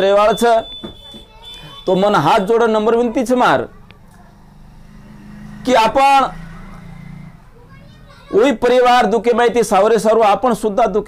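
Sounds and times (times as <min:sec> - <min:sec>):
man speaking: 0:01.8 - 0:03.7, 0:08.3 - 0:11.0.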